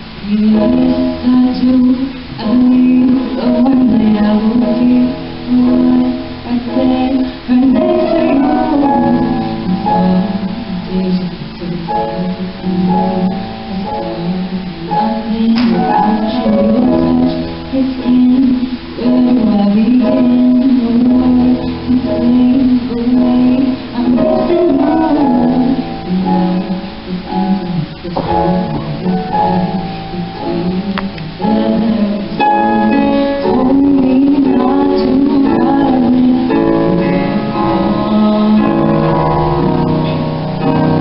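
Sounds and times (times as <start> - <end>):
electronic keyboard piano passage: 0.0 - 41.0
woman singing ballad: 0.0 - 41.0.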